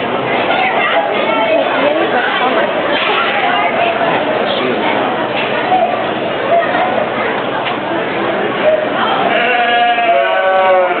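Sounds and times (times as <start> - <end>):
crowd hubbub: 0.0 - 11.0
sheep bleating: 9.3 - 11.0.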